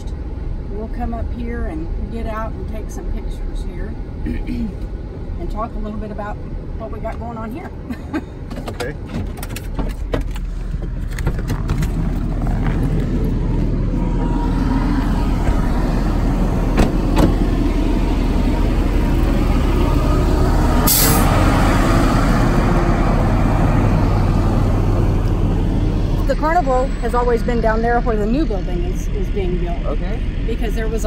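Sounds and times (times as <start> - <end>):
machinery engines rumbling: 0.0 - 31.0.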